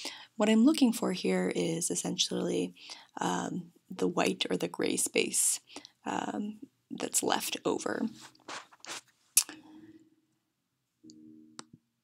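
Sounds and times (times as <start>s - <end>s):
woman's voice: 0.0s - 8.3s.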